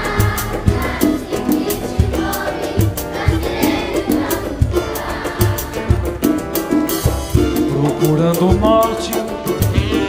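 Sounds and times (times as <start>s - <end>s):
drums and percussion beat: 0.0s - 10.0s.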